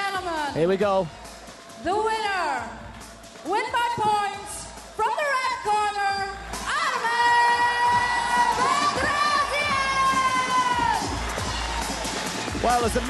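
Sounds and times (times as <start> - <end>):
arena music: 0.0 - 13.0
crowd cheering: 0.0 - 13.0.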